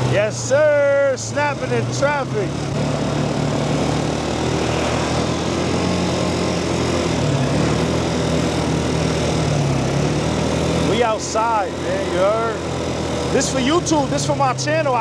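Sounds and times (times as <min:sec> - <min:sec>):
quad bike engine running: 0:00.0 - 0:15.0
wind and road noise: 0:00.0 - 0:15.0.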